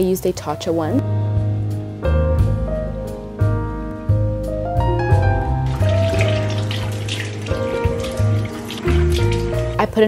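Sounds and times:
background music: 0:00.0 - 0:10.0
water splashing in a sink: 0:05.4 - 0:10.0.

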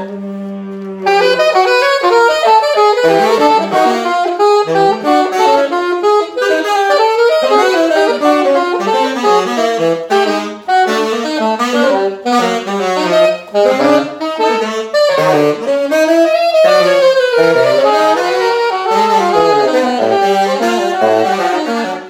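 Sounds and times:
saxophones playing fast runs: 0:00.0 - 0:22.0.

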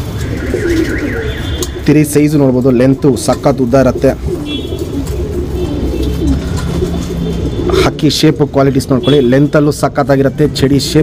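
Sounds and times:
pigeons cooing: 0:00.0 - 0:09.6.

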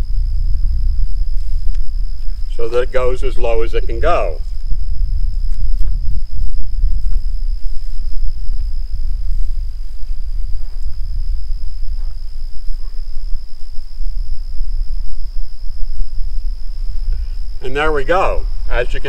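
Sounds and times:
crickets trilling: 0:00.0 - 0:19.0
wind buffeting microphone: 0:00.0 - 0:19.0
faint ticks: 0:01.6 - 0:02.5, 0:04.5 - 0:17.6.

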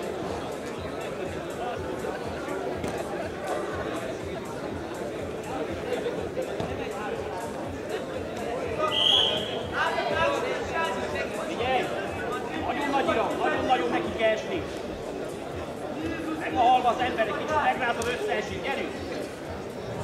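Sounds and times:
crowd chatter: 0:00.0 - 0:20.0
short high whistle: 0:08.9 - 0:09.6.

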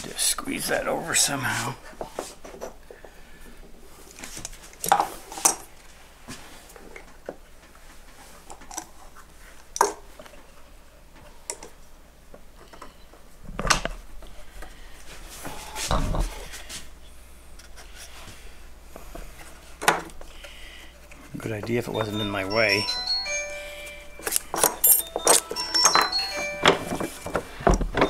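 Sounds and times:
metal clamp clinking: 0:24.2 - 0:26.1.

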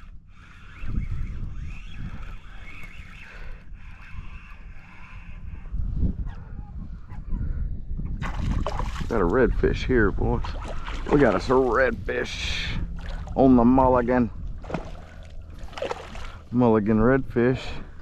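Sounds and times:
fishing reel whirring: 0:00.0 - 0:05.5
wind rumble on microphone: 0:00.0 - 0:18.0.

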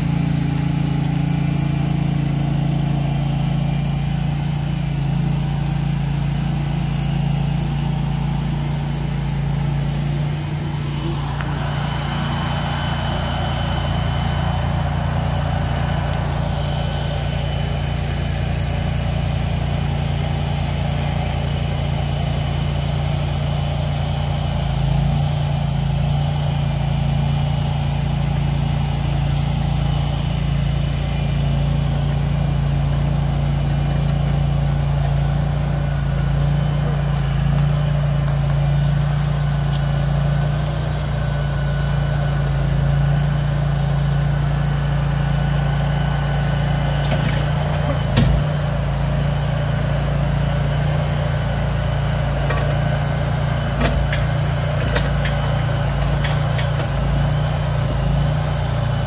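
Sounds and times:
truck engine running: 0:00.0 - 0:59.0.

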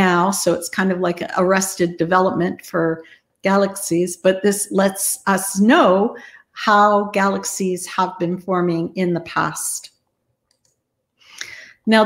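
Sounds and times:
woman speaking: 0:00.0 - 0:09.9, 0:11.4 - 0:12.0.

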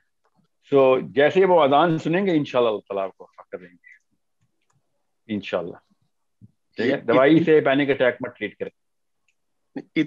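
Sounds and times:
faint clicks: 0:03.9 - 0:04.9.

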